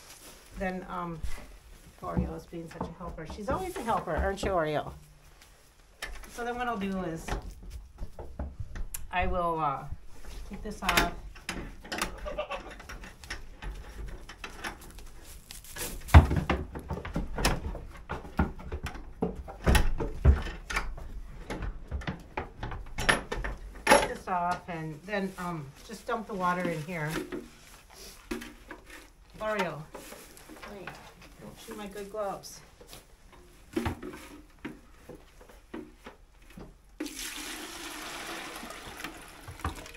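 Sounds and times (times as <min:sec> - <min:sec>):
rustling: 0:00.0 - 0:08.9, 0:12.1 - 0:17.9, 0:24.1 - 0:36.8
water splashing into bucket: 0:37.0 - 0:39.9.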